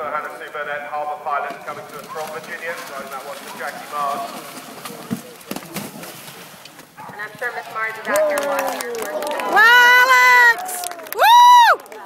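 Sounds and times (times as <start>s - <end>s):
horse hooves galloping: 0.0s - 12.0s.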